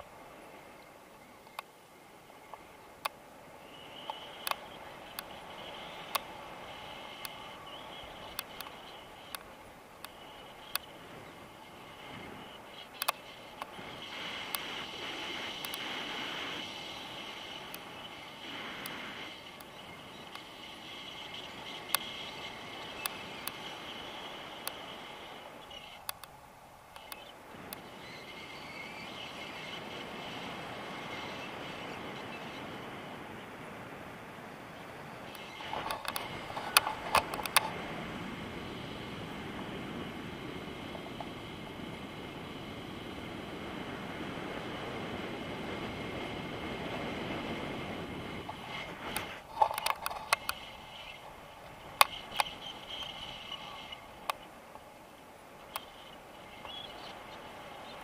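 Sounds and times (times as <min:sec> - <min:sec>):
wind rushing over microphone: 0:26.9 - 0:58.0.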